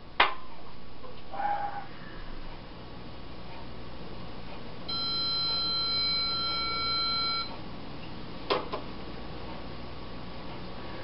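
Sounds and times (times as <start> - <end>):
high electronic tone: 4.9 - 7.5.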